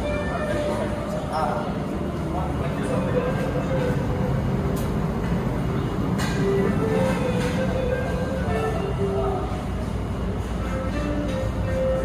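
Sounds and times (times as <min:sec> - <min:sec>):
restaurant room noise: 0:00.0 - 0:12.0.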